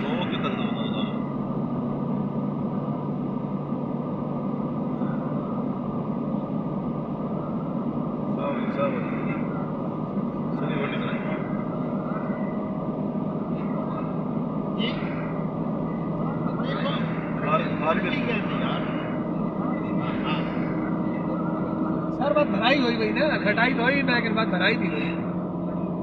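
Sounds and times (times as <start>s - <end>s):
car road and engine noise: 0.0s - 26.0s.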